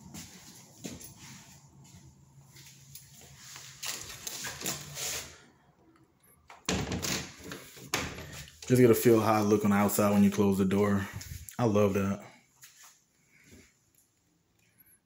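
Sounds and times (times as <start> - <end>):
footsteps on hard floor: 0.0 - 3.3.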